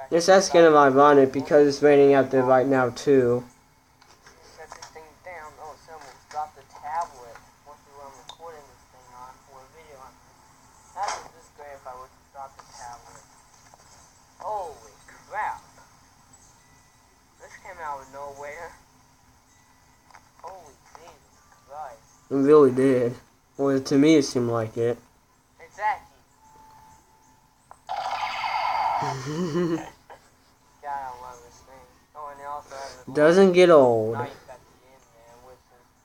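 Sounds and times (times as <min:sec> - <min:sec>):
voice from phone speaker: 0:04.3 - 0:10.2, 0:11.0 - 0:13.2, 0:30.8 - 0:35.9.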